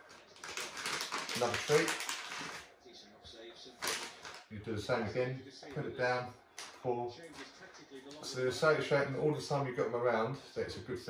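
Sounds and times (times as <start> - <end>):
plastic packet rustling: 0.0 - 2.7, 3.8 - 4.5
sharp plastic crackle: 0.0 - 2.7, 3.8 - 4.5.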